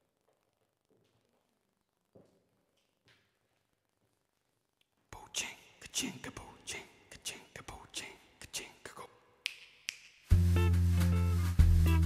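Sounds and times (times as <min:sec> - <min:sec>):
man whispering: 0:05.0 - 0:09.4.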